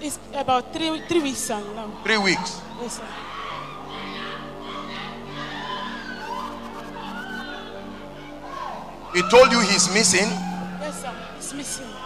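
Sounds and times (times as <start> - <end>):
soft keyboard chords: 9.0 - 12.0.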